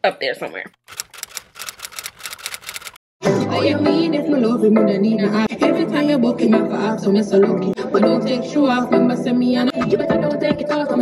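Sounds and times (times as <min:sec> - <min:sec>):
typewriter key clicks: 0:00.9 - 0:03.0.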